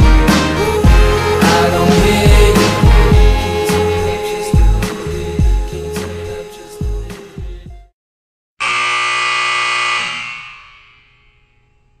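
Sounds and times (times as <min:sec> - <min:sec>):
loud buzzer: 0:08.6 - 0:11.6.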